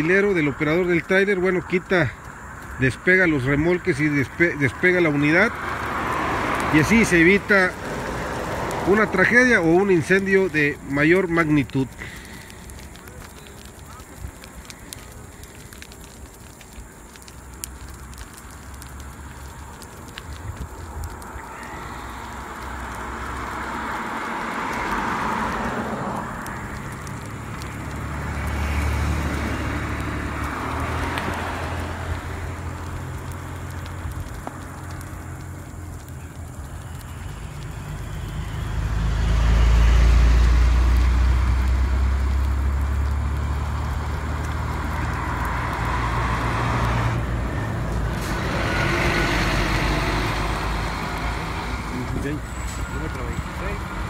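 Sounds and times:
deep vehicle rumble: 0.0 - 54.0
highway traffic passing: 0.0 - 54.0.

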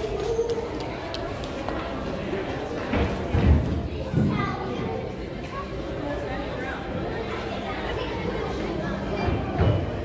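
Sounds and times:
children's voices: 0.0 - 10.0
visitors chattering: 0.0 - 10.0.

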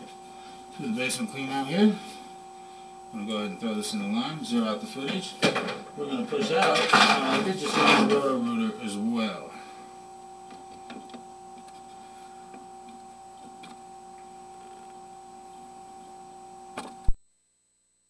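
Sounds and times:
faint electronic hum: 0.0 - 18.0.

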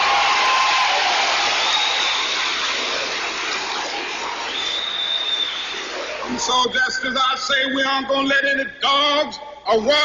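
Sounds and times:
audience applauding and cheering: 0.0 - 6.3.

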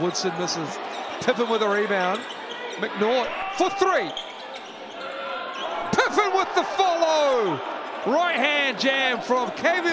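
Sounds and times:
arena crowd noise: 0.0 - 9.9.

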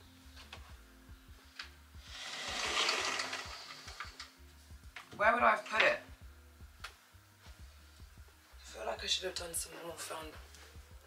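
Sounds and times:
faint background music: 0.0 - 11.0
sliding wardrobe door rolling: 2.1 - 4.2.

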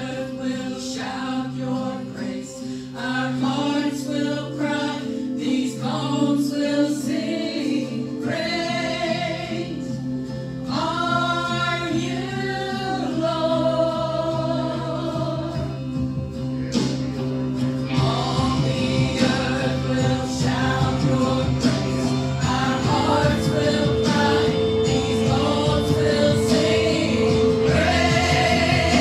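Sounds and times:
church group singing gospel song: 0.0 - 16.3, 17.8 - 29.0.

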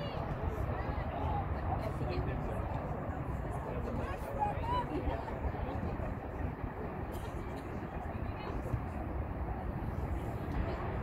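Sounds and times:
distant indistinct voices: 0.0 - 11.0
steady low rumble: 0.0 - 11.0.

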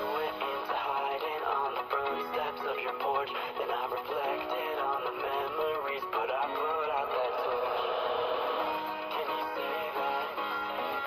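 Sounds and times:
song with lead vocal: 0.0 - 11.0.

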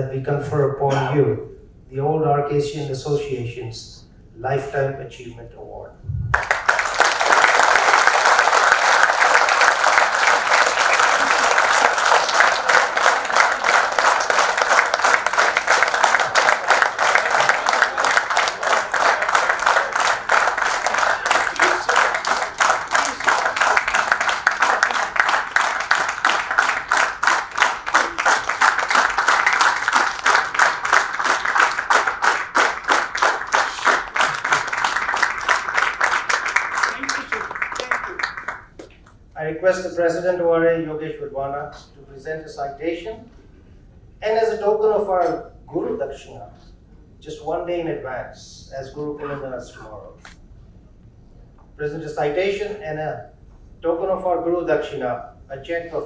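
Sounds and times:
audience applauding: 6.3 - 38.9.

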